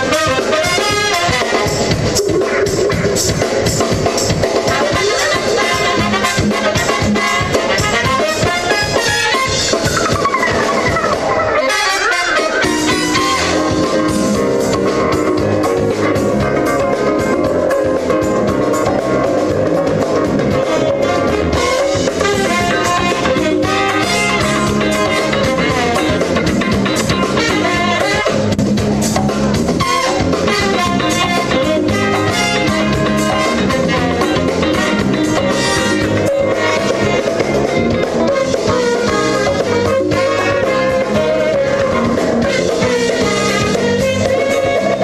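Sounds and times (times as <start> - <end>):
saxophone: 0.0 - 3.8, 4.6 - 45.0
trumpets: 0.0 - 28.6, 29.7 - 45.0
drum kit: 0.0 - 45.0
electric guitar: 0.0 - 45.0
live band with horn section: 0.0 - 45.0.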